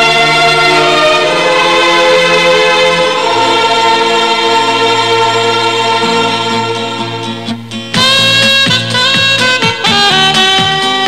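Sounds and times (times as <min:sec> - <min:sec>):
choir singing held chords: 0:00.0 - 0:07.9.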